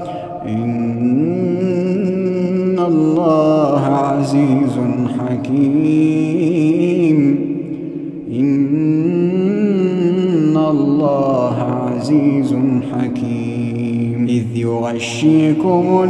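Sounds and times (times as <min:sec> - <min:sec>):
man reciting melodically: 0:00.0 - 0:16.0.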